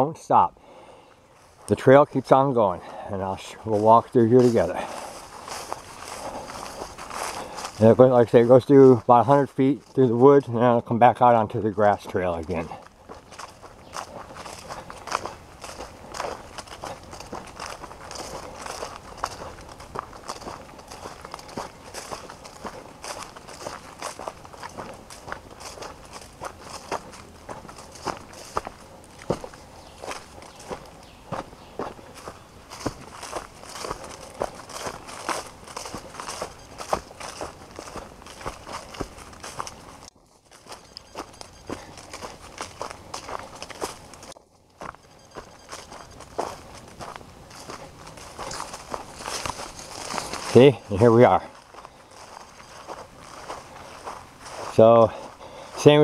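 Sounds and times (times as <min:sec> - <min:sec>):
footsteps on dirt trail: 0:00.3 - 0:56.0
leaves rustling: 0:02.8 - 0:10.0, 0:12.2 - 0:56.0.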